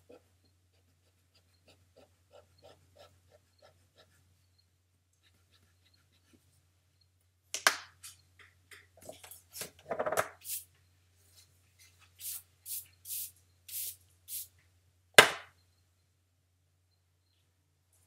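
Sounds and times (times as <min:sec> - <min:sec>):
scratchy pencil strokes: 0:00.1 - 0:04.3, 0:05.2 - 0:06.5.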